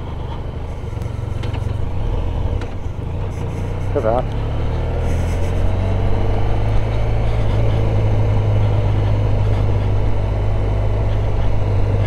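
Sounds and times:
motorcycle engine running: 0:00.0 - 0:12.0
road noise: 0:00.0 - 0:12.0.

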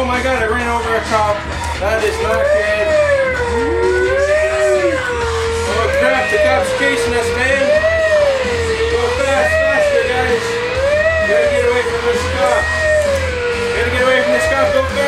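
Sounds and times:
wailing siren: 0:00.0 - 0:15.0.

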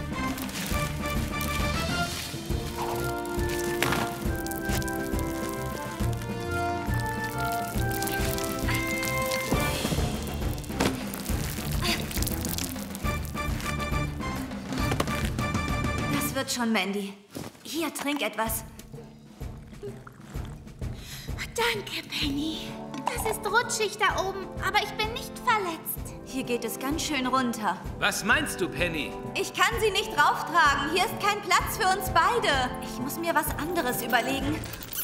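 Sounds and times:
background score music: 0:00.0 - 0:17.0, 0:17.7 - 0:35.0.

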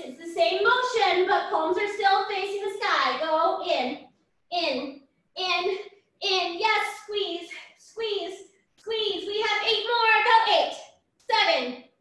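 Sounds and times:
woman calling workout cues: 0:00.0 - 0:11.8.

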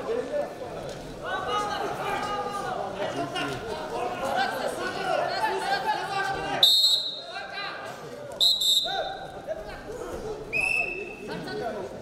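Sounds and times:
crowd voices in a hall: 0:00.0 - 0:12.0
referee's whistle blasts: 0:06.6 - 0:07.3, 0:08.4 - 0:09.2.

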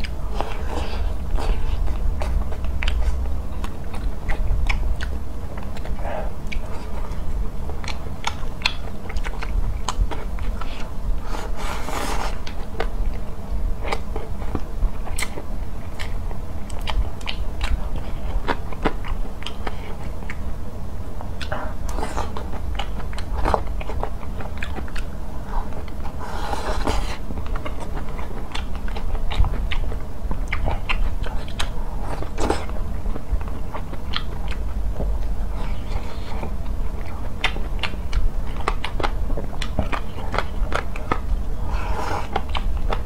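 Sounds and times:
wet chewing and smacking: 0:00.0 - 0:10.9, 0:11.5 - 0:20.5, 0:21.2 - 0:43.0.

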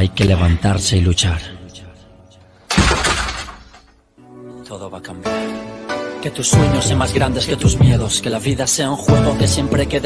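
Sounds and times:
loud crash: 0:02.7 - 0:03.9.

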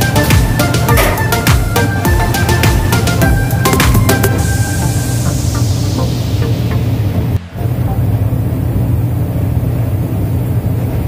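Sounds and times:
ventilation low hum: 0:00.0 - 0:11.0.

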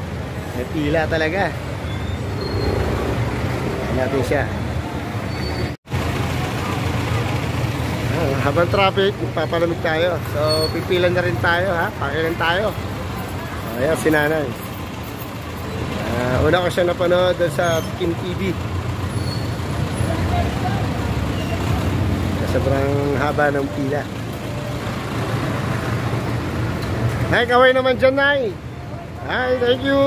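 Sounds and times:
street traffic rumble: 0:00.0 - 0:30.0
vehicle engines idling: 0:00.0 - 0:30.0.

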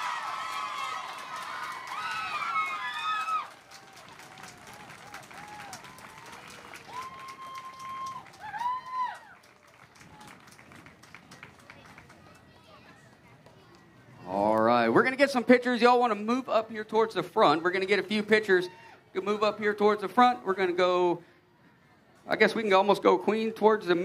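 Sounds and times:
high-pitched cheers and whoops: 0:00.0 - 0:09.4
crowd applauding: 0:00.0 - 0:13.3.

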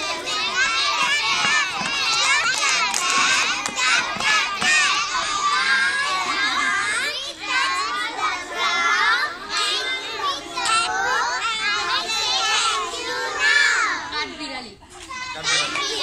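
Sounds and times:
young children chattering: 0:00.0 - 0:16.0.

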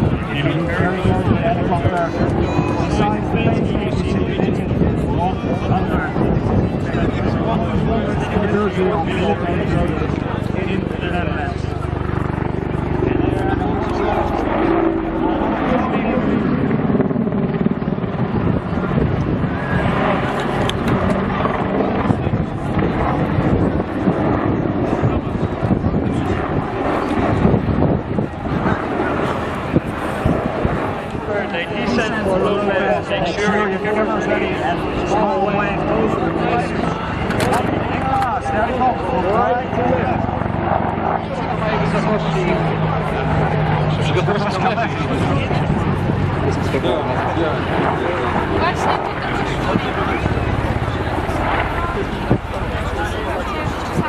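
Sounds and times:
helicopter rotor noise: 0:00.0 - 0:54.0.

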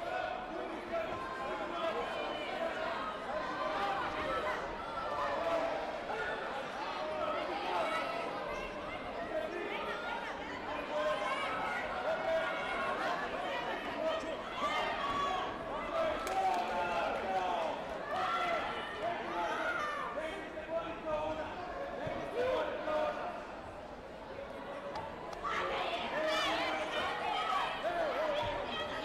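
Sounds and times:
crowd chatter in a hall: 0:00.0 - 0:29.0.

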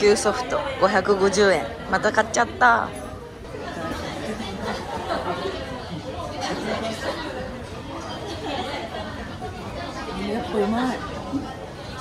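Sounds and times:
background chatter of people: 0:00.0 - 0:12.0.

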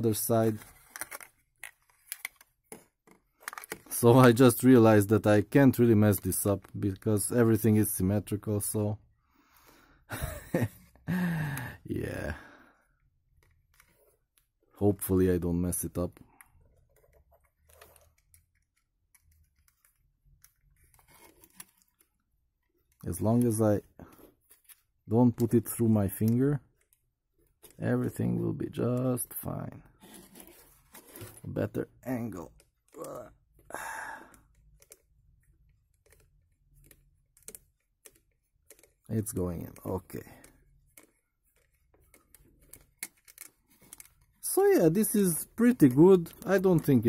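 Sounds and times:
screwdriver clicks and creaks on plastic: 0:00.7 - 0:03.9, 0:16.3 - 0:23.5, 0:34.3 - 0:44.4.

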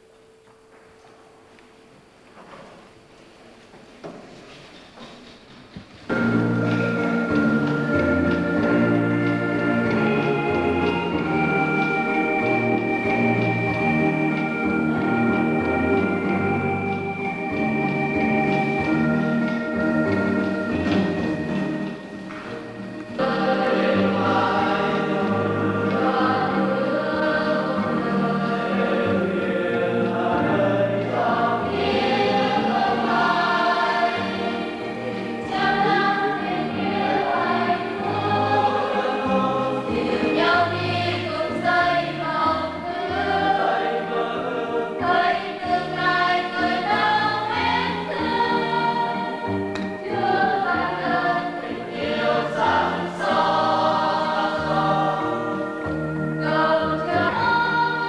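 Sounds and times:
choir singing a hymn: 0:06.1 - 0:58.0
low held accompaniment notes: 0:06.1 - 0:58.0.

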